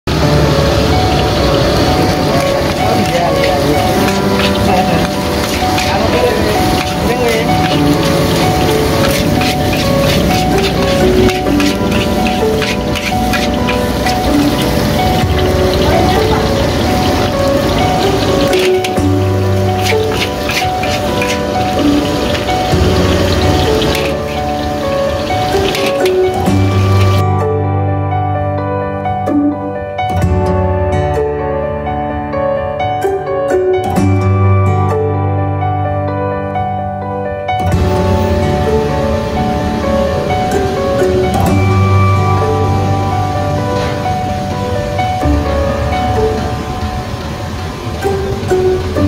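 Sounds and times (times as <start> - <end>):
background music with held notes: 0.1 - 49.0
rice sizzling in a wok: 0.6 - 27.2
metal spatula scraping pan: 2.4 - 15.2, 17.7 - 22.5.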